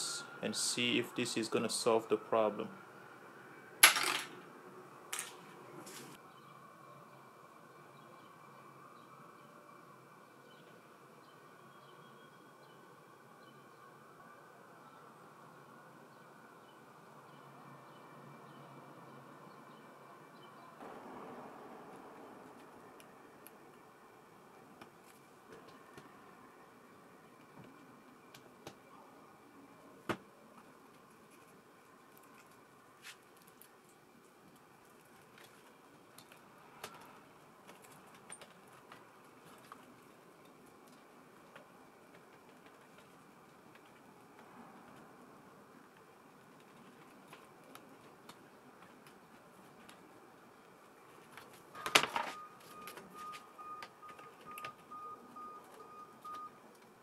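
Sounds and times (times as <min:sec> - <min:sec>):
faint steady hum: 0:00.0 - 0:57.0.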